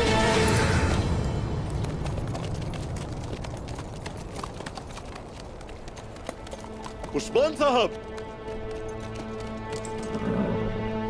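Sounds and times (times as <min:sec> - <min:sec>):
horse hooves on cobblestones: 0:00.0 - 0:11.0.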